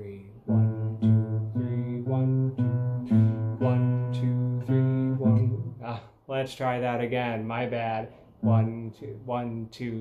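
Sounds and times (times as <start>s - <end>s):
classical guitar slow melody: 0.3s - 5.8s, 8.4s - 8.7s.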